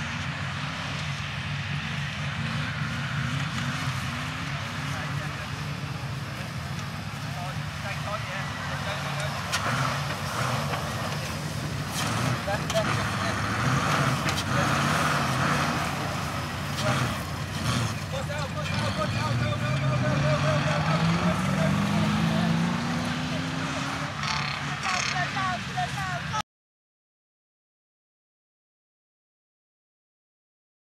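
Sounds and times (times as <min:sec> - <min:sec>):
off-road car engine: 0:00.0 - 0:26.4.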